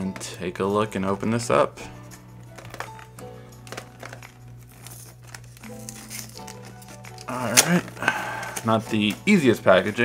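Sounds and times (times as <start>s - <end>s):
cardboard box crinkling and scratching: 3.7s - 8.0s.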